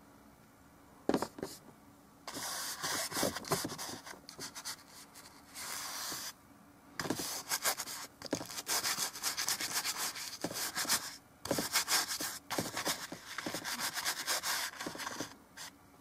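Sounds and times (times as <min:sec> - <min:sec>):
bristle brush scrubbing canvas: 0:02.3 - 0:06.3, 0:07.0 - 0:15.7.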